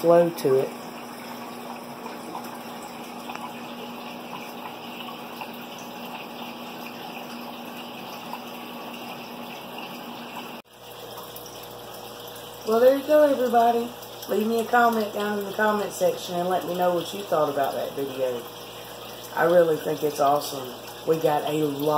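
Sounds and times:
aquarium water running: 0.0 - 21.9
low pump hum: 0.0 - 21.9.

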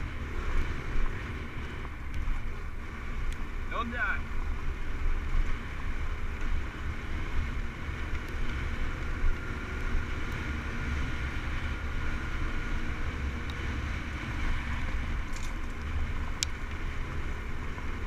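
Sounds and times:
dirt bike engine running: 0.0 - 18.0.

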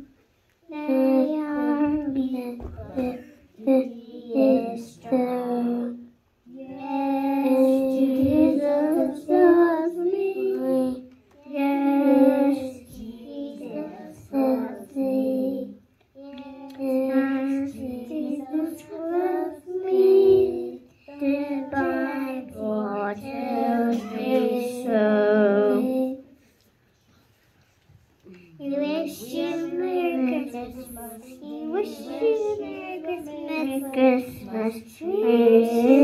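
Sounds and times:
young children singing: 0.0 - 26.6, 28.5 - 36.0.

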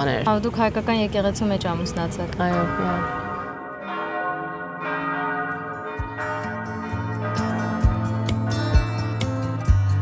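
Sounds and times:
church bells ringing: 1.7 - 9.8.

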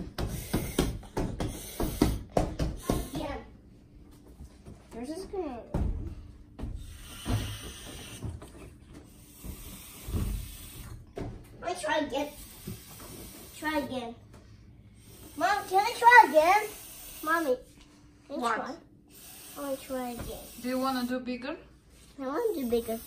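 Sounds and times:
breath hissing into balloon: 0.2 - 3.3, 6.8 - 8.3, 9.1 - 11.0, 12.2 - 14.0, 14.9 - 17.7, 19.1 - 21.2
wordless child's voice: 2.8 - 3.6, 4.9 - 5.9, 11.6 - 12.5, 13.4 - 14.2, 15.3 - 20.6, 22.1 - 23.0.

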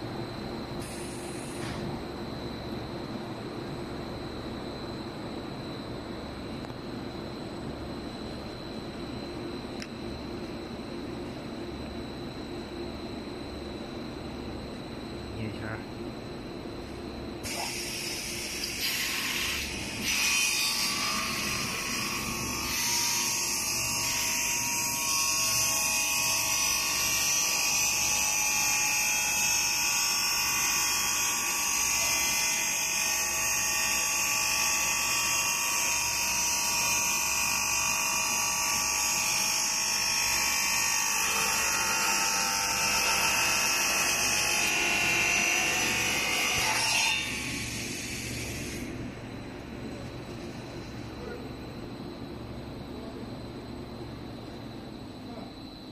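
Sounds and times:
circular saw high-pitched whine: 16.8 - 51.3.

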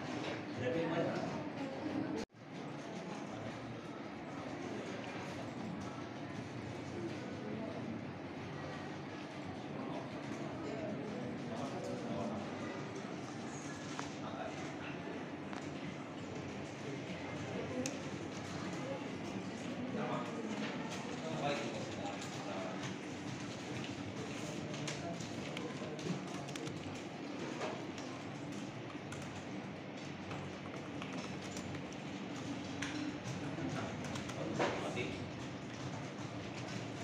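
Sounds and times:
murmur of many voices: 0.0 - 37.0
keyboard and mouse clicks: 24.8 - 27.1.

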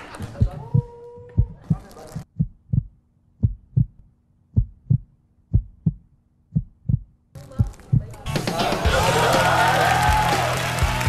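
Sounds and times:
heartbeat thumps: 0.2 - 8.2.

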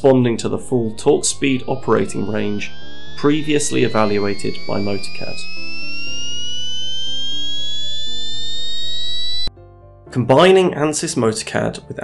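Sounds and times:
background music with low notes: 0.0 - 7.4, 9.5 - 12.0
electric motor whine rising in pitch: 0.0 - 9.5.

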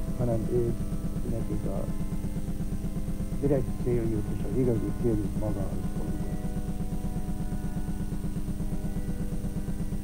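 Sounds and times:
pipe organ sustained chord: 0.0 - 10.0.

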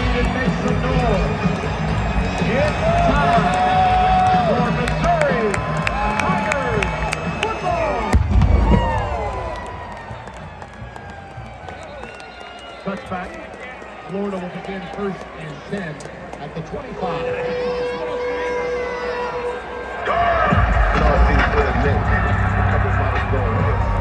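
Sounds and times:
stadium crowd cheering: 0.0 - 24.0.

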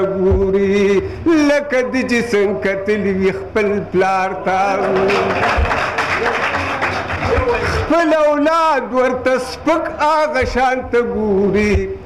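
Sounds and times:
low drum beats: 0.0 - 1.7, 4.6 - 6.3, 7.0 - 12.0.

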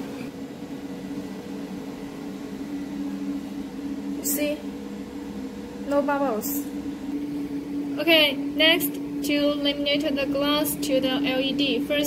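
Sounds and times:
machine humming: 0.0 - 12.0.

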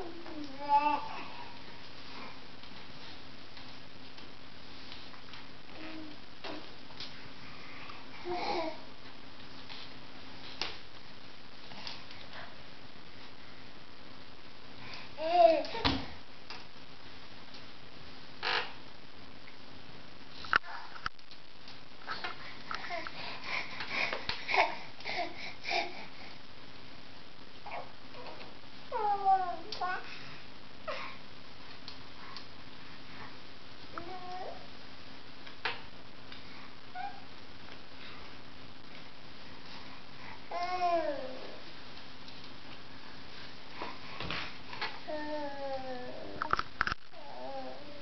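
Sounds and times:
faint room hum: 0.0 - 48.0.

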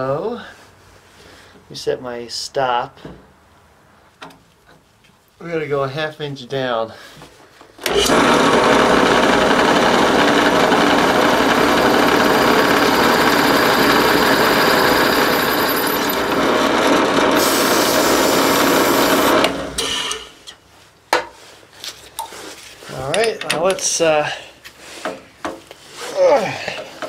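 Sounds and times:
drill cutting into cast iron: 7.8 - 20.4.

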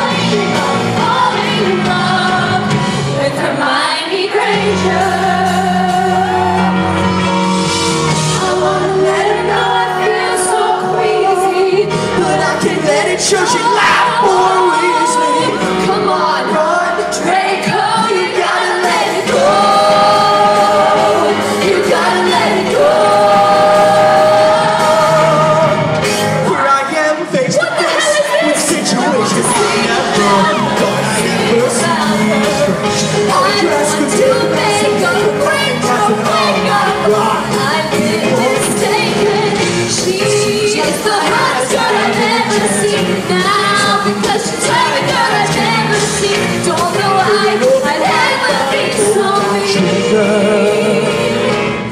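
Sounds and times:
singers with rock band: 0.0 - 51.9.

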